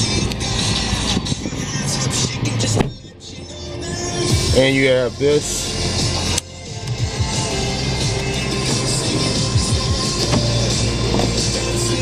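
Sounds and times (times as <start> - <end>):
sunroof sliding open: 0.0 - 3.1, 7.4 - 12.0
car radio music: 0.0 - 12.0.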